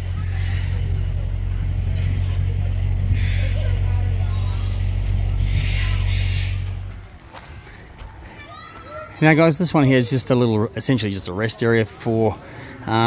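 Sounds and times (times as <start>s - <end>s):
engine low drone: 0.0s - 8.3s.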